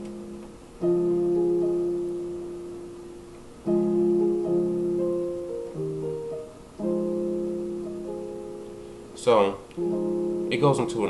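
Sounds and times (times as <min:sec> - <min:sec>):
piano chords on keyboard: 0:00.0 - 0:11.0.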